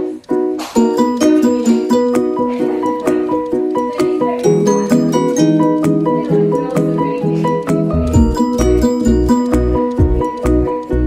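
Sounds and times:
plucked melody over light beat: 0.0s - 11.0s.

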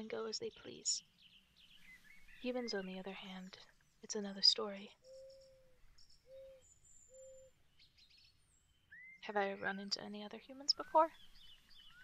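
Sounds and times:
faint owl hooting: 5.0s - 7.5s
high bird chirps: 10.7s - 12.0s.

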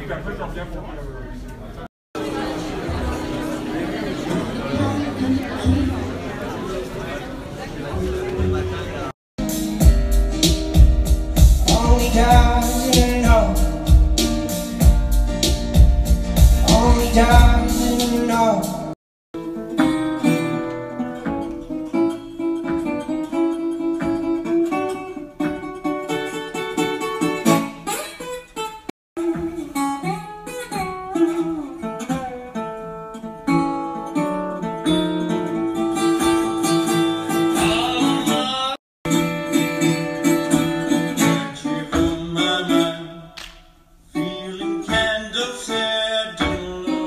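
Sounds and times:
guitar playing: 2.2s - 43.2s
man singing into a microphone: 11.6s - 14.0s, 16.6s - 18.9s, 37.1s - 38.8s, 41.2s - 43.4s, 44.2s - 47.0s.

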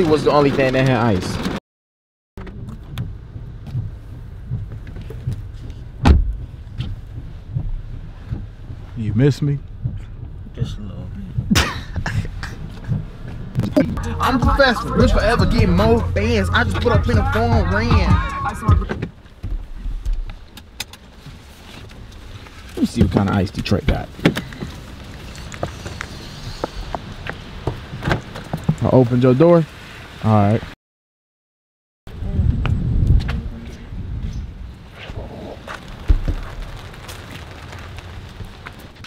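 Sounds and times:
low rumble of car: 2.4s - 30.6s, 32.1s - 39.0s
car door shutting thump: 6.0s - 7.0s
ice pellets ticking on car: 35.8s - 38.9s.

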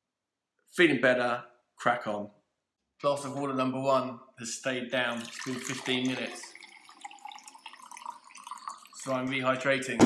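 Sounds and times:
water pouring into a glass: 5.0s - 9.9s.

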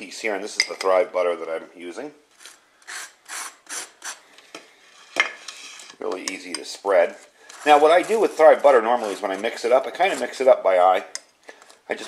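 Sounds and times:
knife scraping butter on toast: 7.5s - 10.4s.

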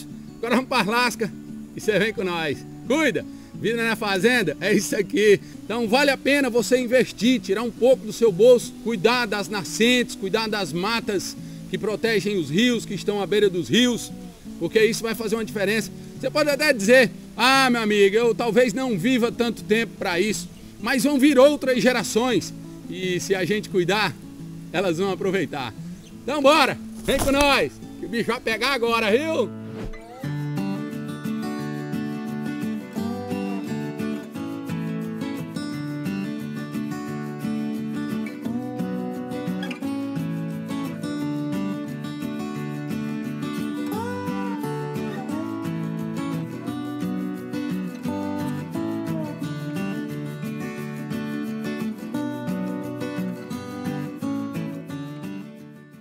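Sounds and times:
background guitar music: 0.0s - 56.0s.

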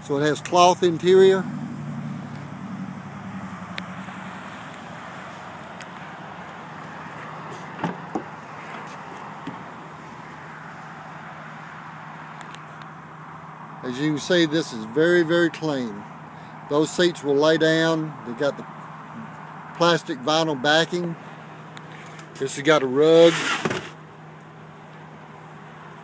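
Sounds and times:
car liftgate click and thump: 7.7s - 8.3s
outdoor hiss: 23.2s - 24.0s.

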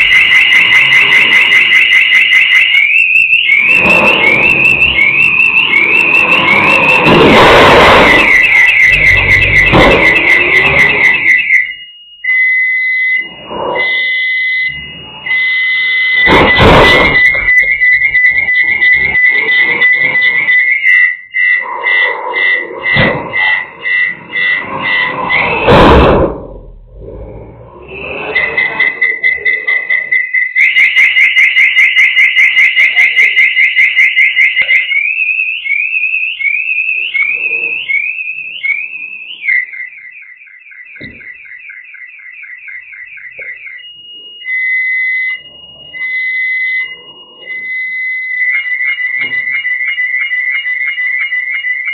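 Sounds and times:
high whistling tone: 0.0s - 31.2s, 34.5s - 50.1s
loud crashes: 3.5s - 11.3s, 16.1s - 18.2s, 24.9s - 28.8s.

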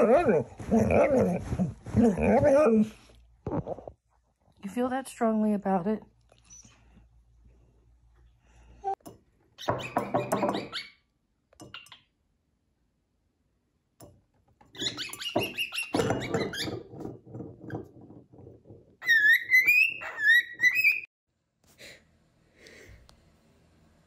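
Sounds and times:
glass rattling on wooden table: 14.8s - 19.0s
cockatiel chirping: 19.0s - 21.1s.

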